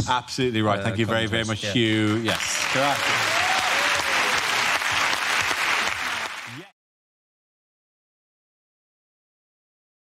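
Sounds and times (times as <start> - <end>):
audience clapping: 1.8 - 6.8.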